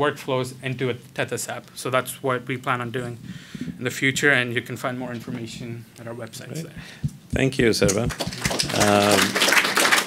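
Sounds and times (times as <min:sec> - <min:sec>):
audience applauding: 0:07.8 - 0:10.0.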